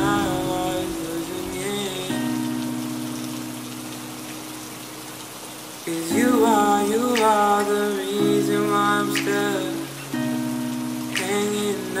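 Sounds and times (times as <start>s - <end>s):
slow song with singing: 0.0s - 3.8s, 5.7s - 12.0s
rain falling: 0.0s - 12.0s.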